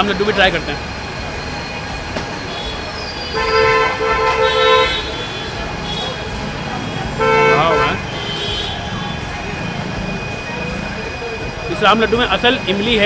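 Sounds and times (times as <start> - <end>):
street noise hum: 0.0 - 13.0
vehicle horn honking: 2.5 - 10.8.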